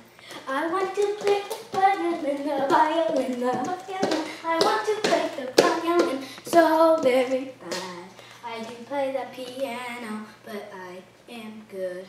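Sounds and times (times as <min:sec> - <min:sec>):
girl singing: 0:00.2 - 0:12.0
hand claps: 0:02.7 - 0:06.7.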